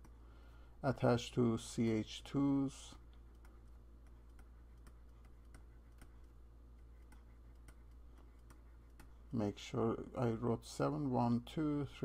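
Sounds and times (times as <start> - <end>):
low steady hum: 0.0 - 12.0
stylus tapping pen tablet: 3.1 - 9.2.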